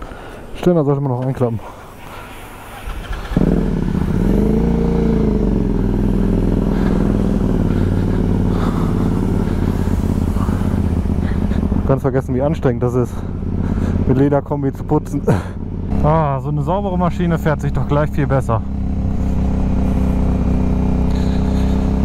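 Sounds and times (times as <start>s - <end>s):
motorcycle engine starting and revving: 2.2s - 22.0s.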